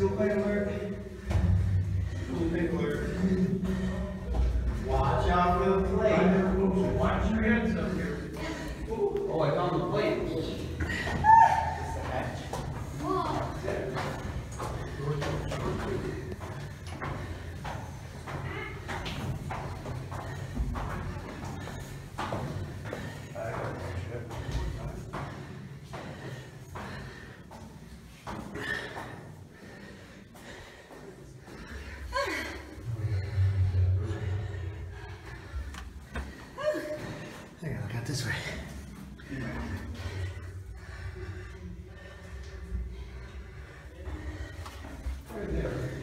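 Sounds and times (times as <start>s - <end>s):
footsteps on iron spiral staircase: 0.0s - 46.0s.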